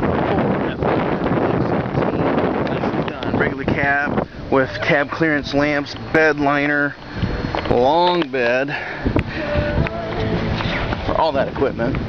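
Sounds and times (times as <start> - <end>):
wind blowing on microphone: 0.0 - 12.0.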